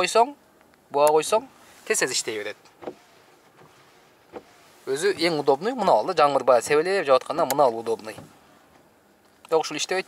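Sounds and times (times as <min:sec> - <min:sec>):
car cabin background: 0:00.0 - 0:10.0.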